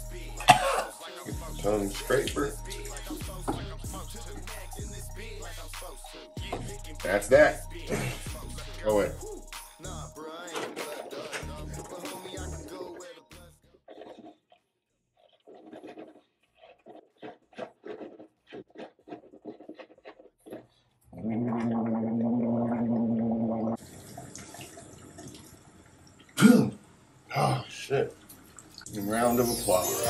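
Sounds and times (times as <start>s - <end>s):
man gargling: 0.0s - 4.8s, 5.6s - 10.1s, 21.2s - 23.8s, 26.4s - 27.7s
man spitting into sink: 0.4s - 1.0s, 7.9s - 9.2s, 21.2s - 24.8s, 26.3s - 26.8s
liquid sloshing in mouth: 12.6s - 26.4s.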